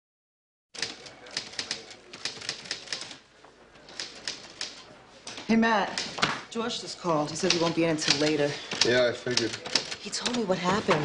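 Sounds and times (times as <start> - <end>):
typewriter keys striking: 0.8 - 3.2, 7.5 - 10.4.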